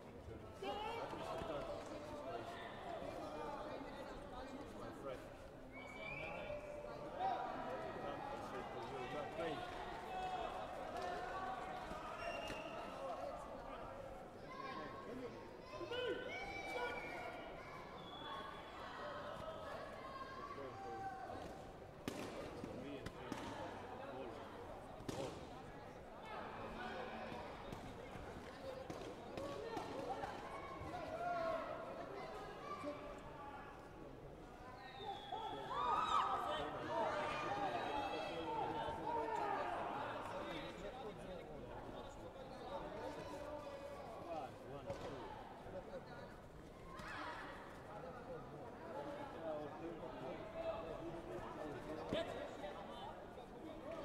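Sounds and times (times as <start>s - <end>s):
many voices talking: 0.0s - 54.0s
loud high shout: 35.5s - 38.2s.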